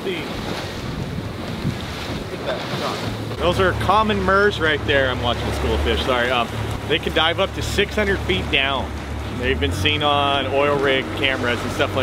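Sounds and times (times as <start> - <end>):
choppy sea wash: 0.0 - 12.0
wind buffeting microphone: 0.0 - 12.0.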